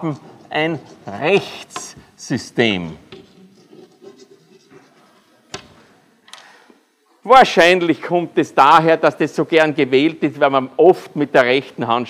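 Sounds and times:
chalk scratching on blackboard: 0.0s - 2.0s, 3.2s - 5.5s.

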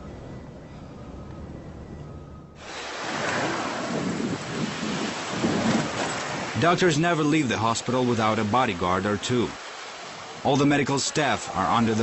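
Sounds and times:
wind: 0.0s - 12.0s
sea surf: 2.6s - 12.0s.

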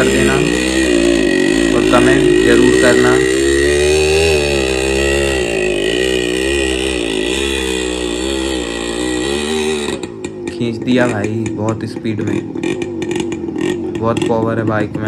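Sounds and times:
motorcycle engine revving: 0.0s - 15.0s.

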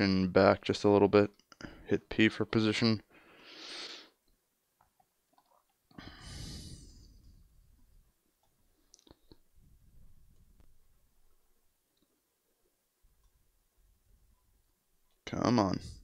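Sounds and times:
person breathing: 3.1s - 4.2s, 5.9s - 7.8s.

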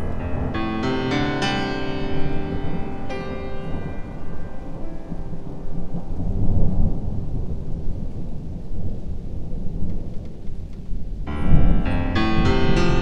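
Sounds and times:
piano notes: 0.0s - 8.8s, 11.3s - 13.0s
thunder rumbling: 0.0s - 13.0s.

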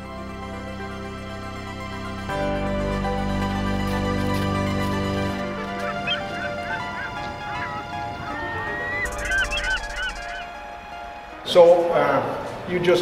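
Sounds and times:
soft background music: 0.0s - 13.0s
birds calling: 4.8s - 11.7s.

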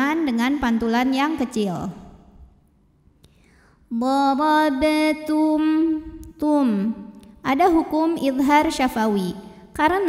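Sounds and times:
woman chanting: 0.0s - 2.1s, 3.9s - 10.0s.

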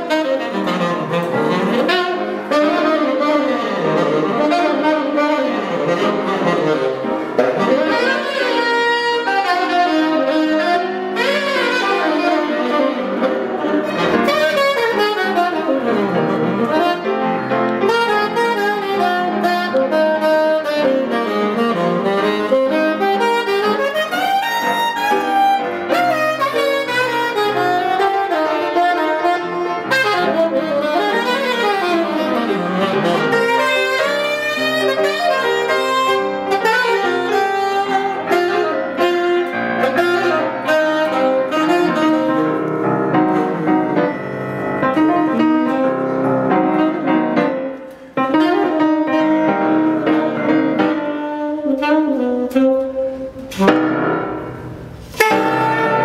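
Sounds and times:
saxophone playing quick runs: 0.0s - 42.6s, 44.8s - 56.0s
jazz piano: 0.0s - 56.0s.

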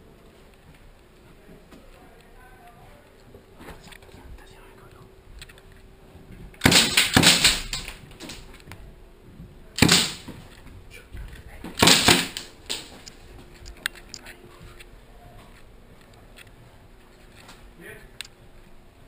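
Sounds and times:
airsoft gunfire bursts: 6.6s - 8.3s, 9.8s - 10.3s, 11.8s - 12.8s.

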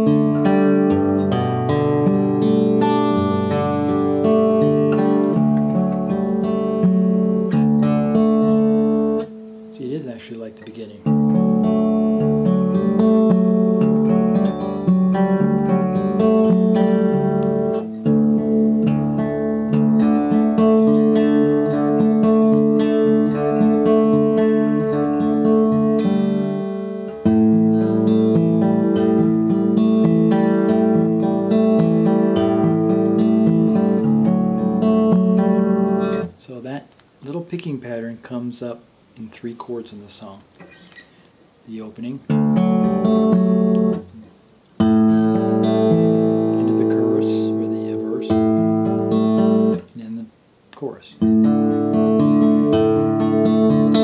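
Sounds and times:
fingerpicked acoustic guitar: 0.0s - 54.0s.

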